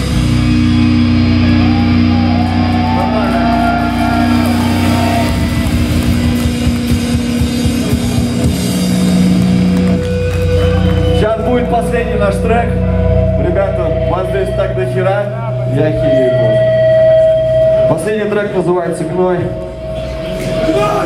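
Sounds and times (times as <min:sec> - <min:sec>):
distorted electric guitars: 0:00.0 - 0:21.0
wavering high guitar line: 0:00.0 - 0:21.0.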